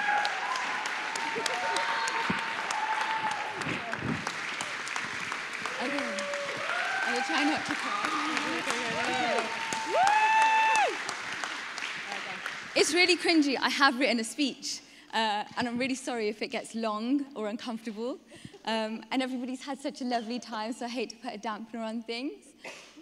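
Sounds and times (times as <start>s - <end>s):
audience applauding: 0.0s - 13.2s.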